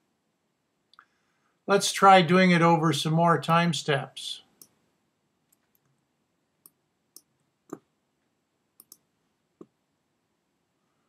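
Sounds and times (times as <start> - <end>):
keyboard and mouse clicks: 8.8 - 9.8.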